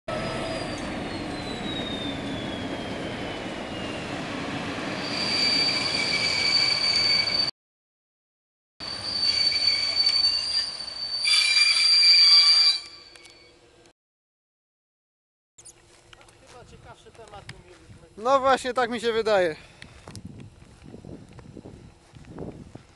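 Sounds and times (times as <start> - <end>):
coaches rolling with wheel squeal: 0.1 - 4.0, 4.9 - 7.5, 8.8 - 13.6.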